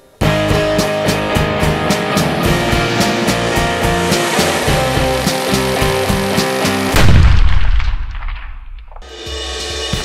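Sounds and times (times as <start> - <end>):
rock music with drum beat: 0.2 - 7.0, 9.0 - 10.0
loud deep gunshot: 6.9 - 9.0.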